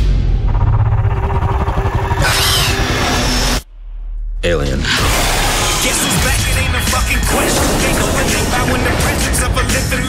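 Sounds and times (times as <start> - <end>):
heavy low rumble: 0.0 - 4.5
dramatic trailer music: 0.0 - 10.0.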